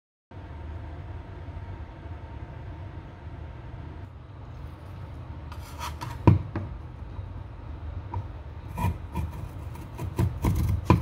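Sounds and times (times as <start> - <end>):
low room rumble: 0.3 - 11.0.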